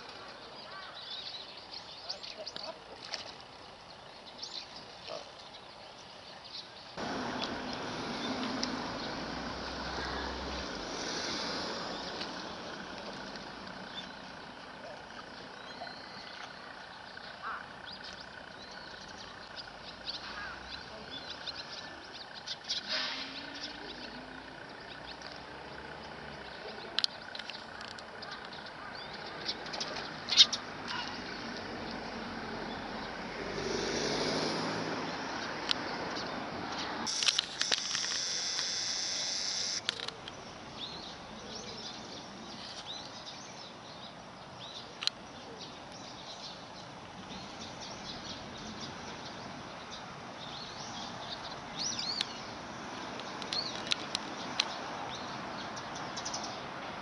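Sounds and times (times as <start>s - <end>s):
outdoor background noise: 0.0s - 57.0s.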